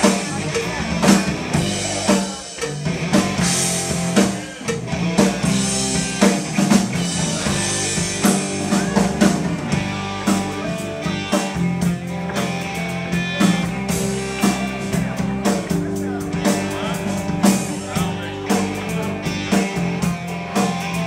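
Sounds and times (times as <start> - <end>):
bass guitar: 0.0 - 21.0
drum kit steady beat: 0.0 - 21.0
electric guitar: 0.0 - 21.0.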